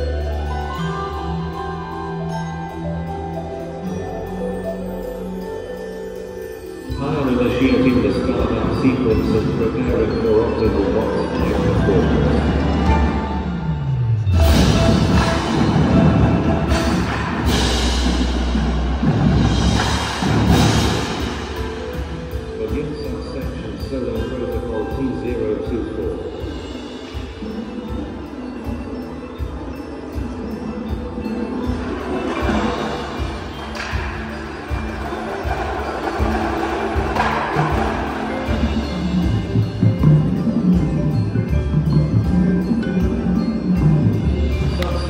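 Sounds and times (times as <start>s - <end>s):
percussion ensemble playing: 0.0s - 45.0s
deep timpani-like booms: 11.4s - 22.8s.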